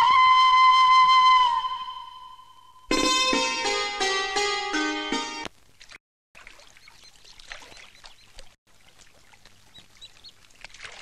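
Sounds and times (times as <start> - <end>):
flute long held note: 0.0 - 2.9
plucked-string music: 2.9 - 5.5.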